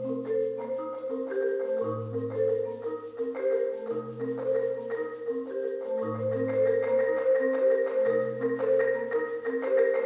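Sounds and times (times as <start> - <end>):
marimbas played with mallets: 0.0 - 10.0.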